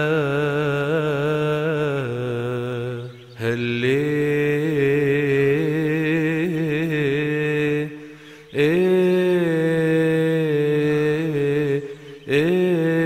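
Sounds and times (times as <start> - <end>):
man chanting unaccompanied: 0.0 - 13.0.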